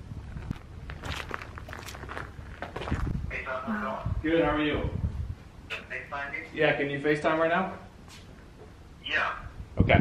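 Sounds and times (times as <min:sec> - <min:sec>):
footsteps on gravelly dirt: 0:00.2 - 0:03.3.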